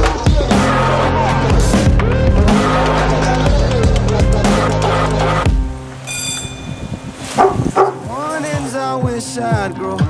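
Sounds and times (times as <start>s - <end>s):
dog barking: 7.3s - 8.1s.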